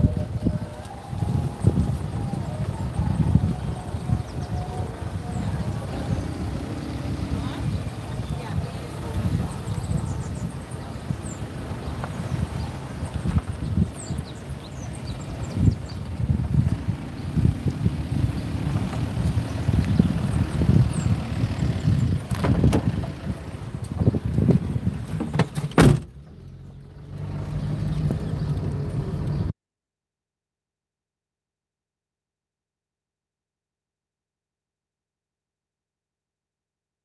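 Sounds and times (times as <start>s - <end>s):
car engine and road hum: 0.0s - 29.6s
traffic noise: 0.0s - 29.6s
wind: 0.0s - 29.6s
car door shutting: 22.3s - 23.0s, 25.1s - 26.2s.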